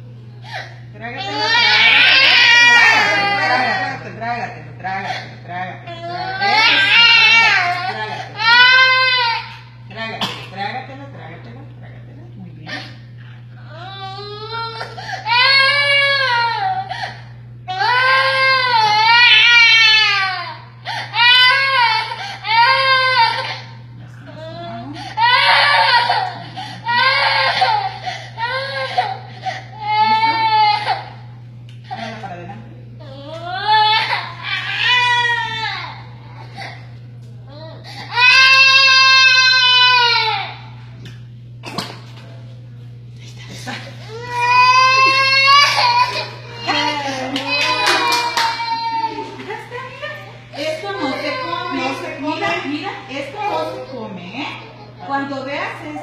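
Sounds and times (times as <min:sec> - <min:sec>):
baby crying loudly: 0:01.2 - 0:03.9, 0:05.9 - 0:09.6, 0:13.8 - 0:17.1, 0:17.7 - 0:23.7, 0:25.0 - 0:31.2, 0:33.5 - 0:36.0, 0:38.0 - 0:40.7, 0:44.1 - 0:49.5, 0:50.6 - 0:52.6
infant crying: 0:01.2 - 0:04.0, 0:44.1 - 0:49.4, 0:50.6 - 0:52.6.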